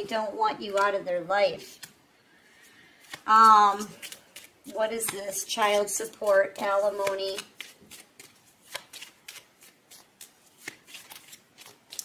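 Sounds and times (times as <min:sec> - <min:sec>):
cards being shuffled: 0:01.6 - 0:02.0, 0:02.7 - 0:12.0.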